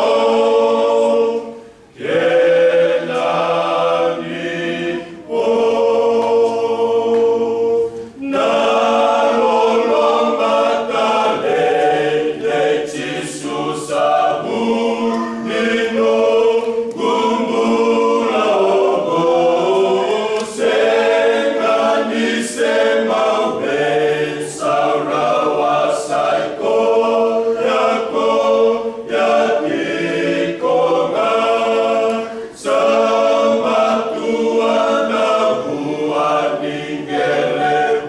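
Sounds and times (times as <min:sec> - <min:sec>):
men's choir singing a cappella: 0:00.0 - 0:38.0.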